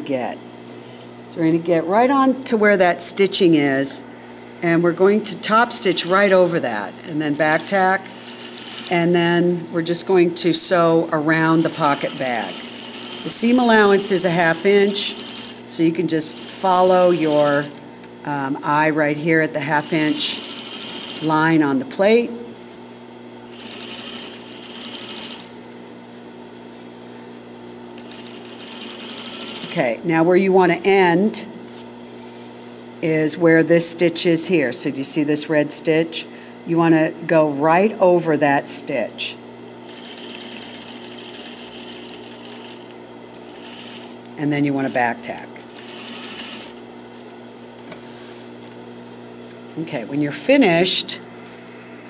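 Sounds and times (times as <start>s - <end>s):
sewing machine motor humming: 5.4s - 9.2s, 11.2s - 17.8s, 19.6s - 21.4s, 23.5s - 25.6s, 28.0s - 29.9s, 39.8s - 45.0s, 45.6s - 46.8s
sewing machine stitching fabric: 7.4s - 9.1s, 11.5s - 15.6s, 19.8s - 21.4s, 23.5s - 25.5s, 28.0s - 29.8s, 39.9s - 42.9s, 43.5s - 44.1s, 45.8s - 46.8s.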